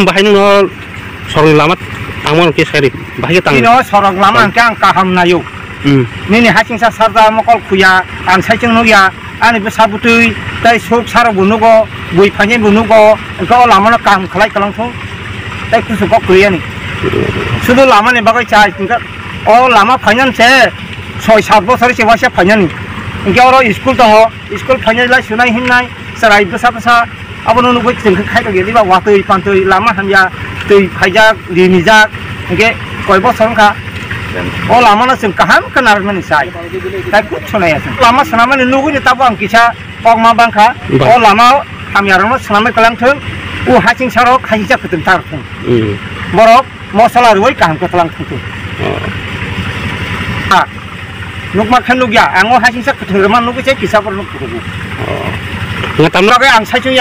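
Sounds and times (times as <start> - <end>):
man speaking: 0.0 - 15.0, 15.7 - 49.2, 51.5 - 57.0
engine running with fast pulse: 0.0 - 57.0.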